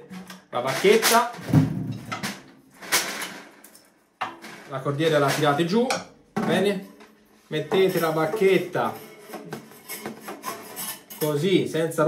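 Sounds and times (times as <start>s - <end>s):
drumstick scraping snare drum: 0.0s - 3.6s, 7.8s - 11.4s
snare wires rattling: 0.0s - 6.0s.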